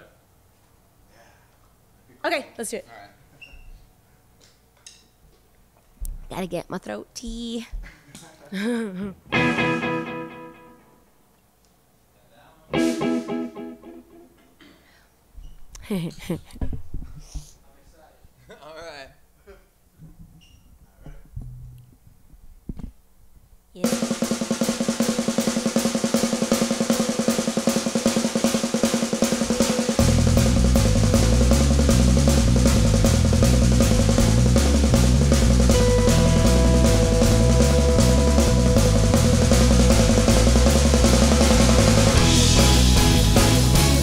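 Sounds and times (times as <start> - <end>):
drums: 5.9 - 8.0, 8.6 - 10.9, 12.7 - 14.8, 21.2 - 44.0
bass guitar: 9.2 - 10.9, 12.8 - 14.3, 30.0 - 44.0
rock band playing: 9.3 - 10.9, 12.8 - 14.3, 24.0 - 44.0
electric guitar: 9.3 - 11.0, 12.7 - 14.5, 30.0 - 44.0.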